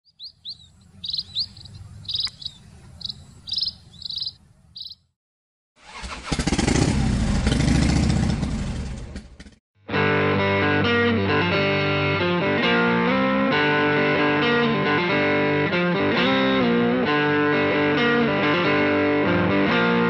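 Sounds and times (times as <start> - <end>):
small birds chirping: 0.0 - 5.2
motorcycle engine revving: 5.8 - 9.6
guitar music: 9.9 - 20.0.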